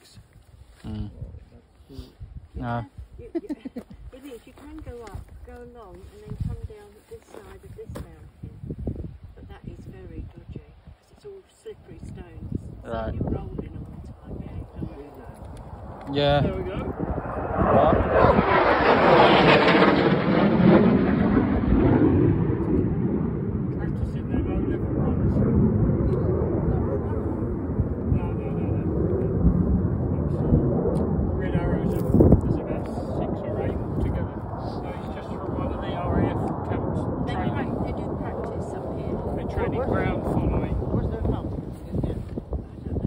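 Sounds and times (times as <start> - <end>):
aircraft flying low overhead: 12.4 - 43.0.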